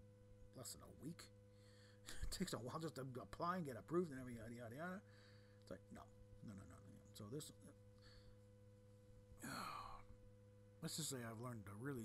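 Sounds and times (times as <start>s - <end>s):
faint steady hum: 0.0s - 12.0s
man sighing: 9.4s - 10.2s.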